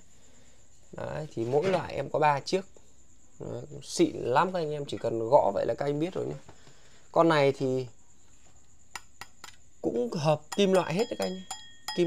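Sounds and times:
taps on metal lamp housing: 10.5 - 12.0.

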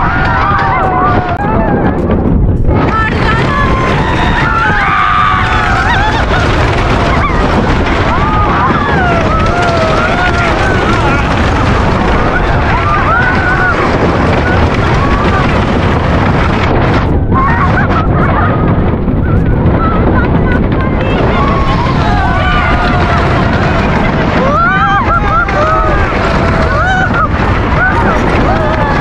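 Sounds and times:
riders shrieking and yelling: 0.0 - 2.2, 2.8 - 16.6, 17.2 - 29.0
roller coaster rumbling on track: 0.0 - 29.0
wind on microphone: 0.0 - 29.0.

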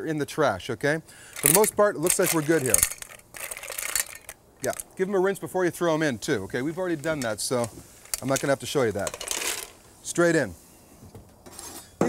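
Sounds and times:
shells clattering in metal bowl: 1.3 - 5.0, 8.0 - 9.8.

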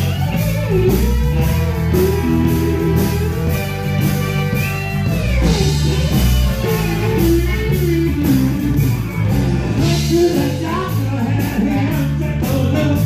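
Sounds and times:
live blues band playing: 0.0 - 13.0.

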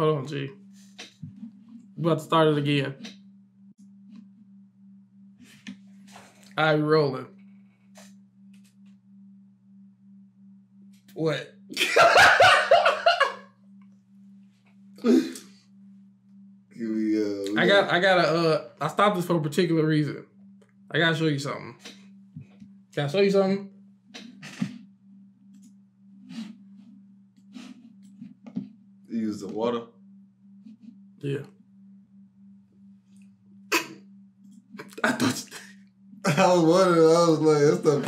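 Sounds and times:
faint pulsing low hum: 0.0 - 38.0.

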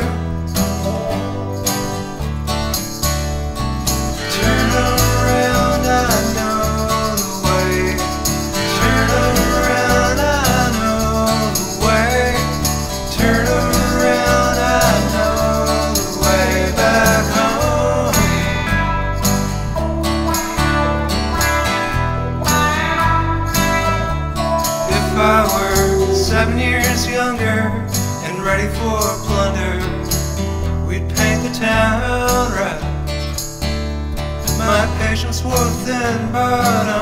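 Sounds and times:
bass and drums: 0.0 - 27.1
lead guitar melody: 0.0 - 30.9.

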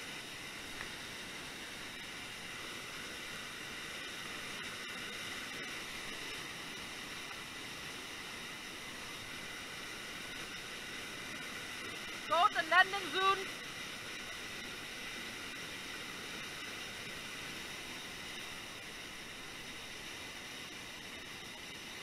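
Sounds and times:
waterfall rushing: 0.0 - 22.0.

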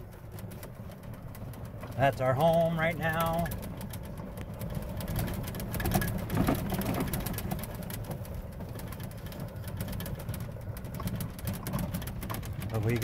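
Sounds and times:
golf cart rumbling: 0.0 - 13.0
small knocks and rattles: 0.0 - 13.0.

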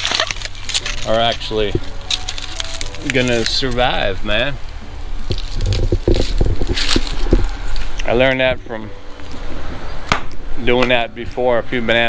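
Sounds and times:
dry leaves rustling and crackling: 0.0 - 10.0.

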